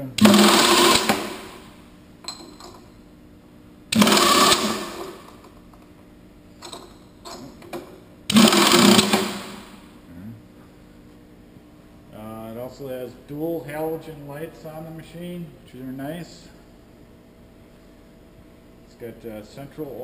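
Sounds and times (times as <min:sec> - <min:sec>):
pneumatic air bursts: 0:00.2 - 0:01.7, 0:03.9 - 0:05.2, 0:08.3 - 0:09.8.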